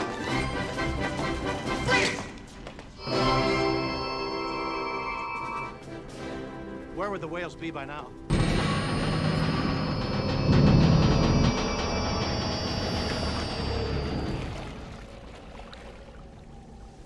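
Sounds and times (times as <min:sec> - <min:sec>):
orchestral film score: 0:00.0 - 0:17.0
falling tone: 0:08.3 - 0:15.0
shimmering high ringing tones: 0:08.3 - 0:15.0
low rumble: 0:08.3 - 0:15.8.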